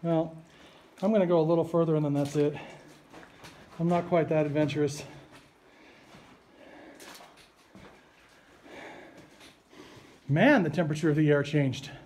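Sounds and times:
footsteps on rocky floor: 0:02.1 - 0:06.4, 0:07.0 - 0:08.5.

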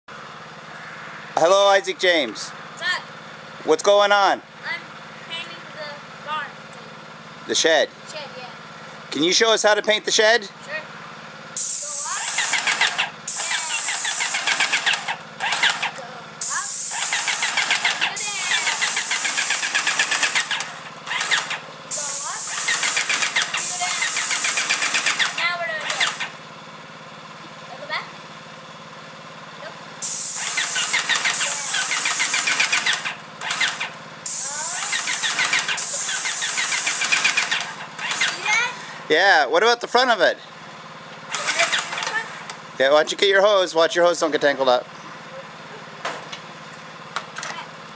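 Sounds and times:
spray gun hissing: 0:11.6 - 0:15.0, 0:16.4 - 0:20.6, 0:21.9 - 0:25.2, 0:30.0 - 0:32.9, 0:34.2 - 0:37.6
pump motor humming: 0:11.6 - 0:26.5, 0:30.0 - 0:39.1, 0:41.2 - 0:42.6.

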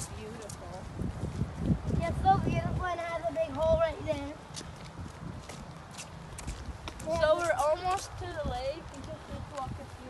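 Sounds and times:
footsteps on wet pavement: 0:00.0 - 0:10.0.

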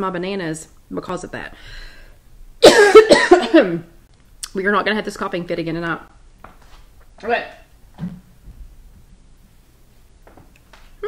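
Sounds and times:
woman coughing: 0:02.6 - 0:03.9.

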